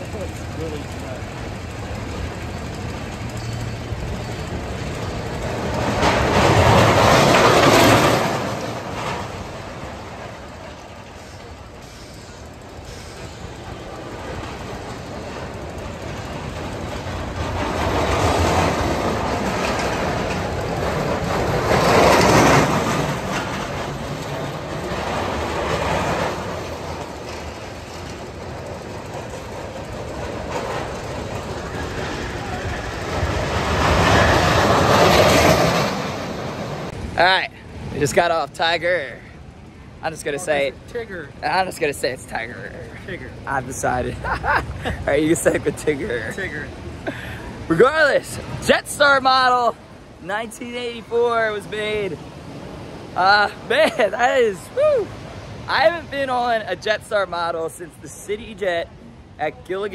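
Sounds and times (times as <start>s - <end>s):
roller coaster wheels rumbling: 0.0s - 59.9s.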